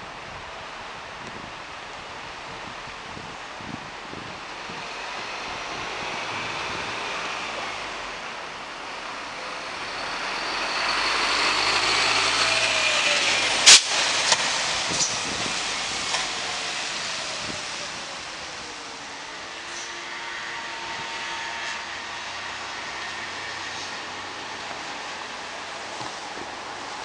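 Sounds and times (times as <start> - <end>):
vehicle engine and tyre noise: 0.0 - 27.0.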